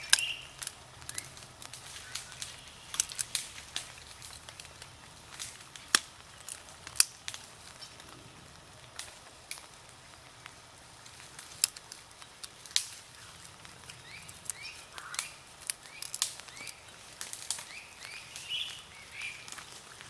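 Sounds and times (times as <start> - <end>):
dog chewing a dry branch: 0.0 - 10.4, 11.0 - 20.0.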